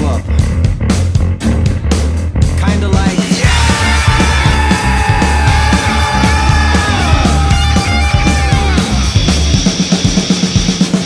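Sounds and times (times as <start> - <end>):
bass drum and snare beat: 0.0 - 11.0
heavy metal song: 2.4 - 11.0
guitars: 3.4 - 10.1.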